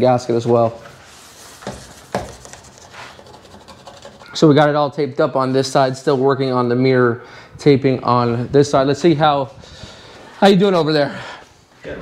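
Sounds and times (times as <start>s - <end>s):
paper towel wiping plastic: 0.4s - 4.4s.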